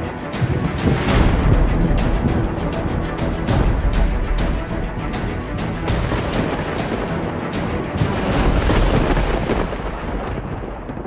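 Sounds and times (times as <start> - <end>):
deep thunder rumble: 0.2 - 11.0.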